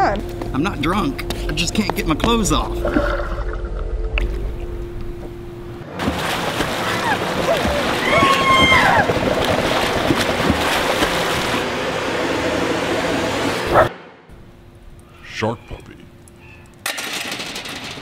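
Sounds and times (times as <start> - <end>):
short wavering pitched sound: 0.8 - 5.8
underwater bubbles and churning water: 2.6 - 5.3, 6.0 - 12.6.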